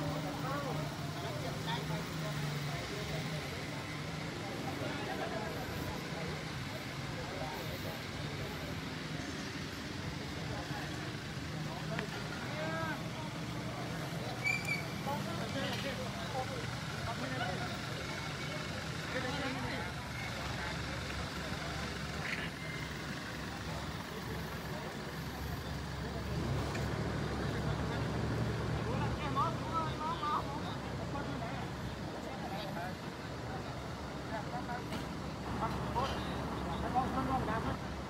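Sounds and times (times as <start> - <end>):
faint indistinct voices: 0.0 - 38.0
vehicle engines running: 0.0 - 38.0.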